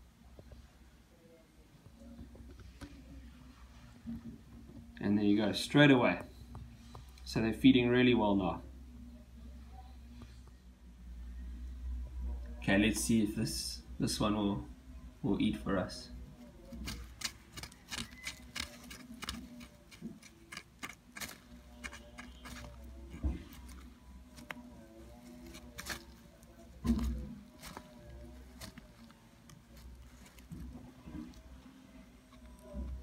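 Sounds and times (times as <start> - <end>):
tongs tapping plant leaves: 16.7 - 31.6.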